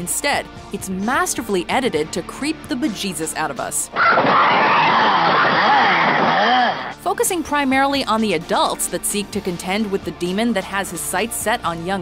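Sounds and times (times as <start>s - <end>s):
wavering shrieks over harsh noise: 3.9s - 7.0s.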